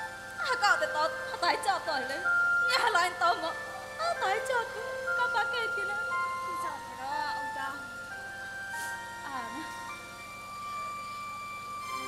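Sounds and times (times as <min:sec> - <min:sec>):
electronic keyboard melody: 0:00.0 - 0:12.0.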